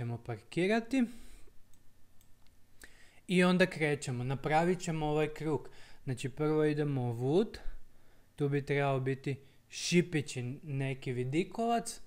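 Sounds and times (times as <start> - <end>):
computer mouse clicks: 1.7 - 2.6.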